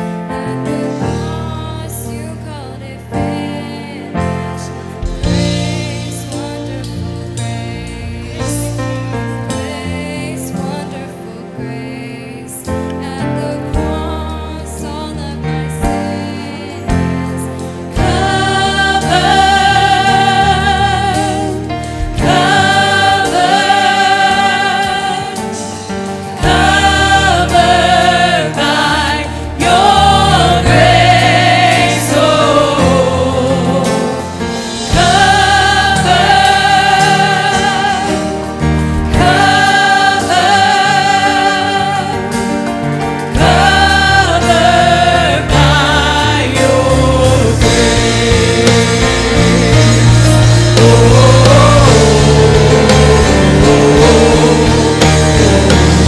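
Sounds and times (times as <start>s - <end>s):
group singing gospel song: 0.0s - 56.0s
live band with drums: 4.8s - 9.6s, 16.9s - 56.0s.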